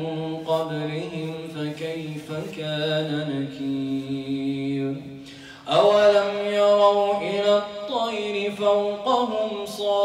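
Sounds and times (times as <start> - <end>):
man chanting melodically: 0.0 - 10.0.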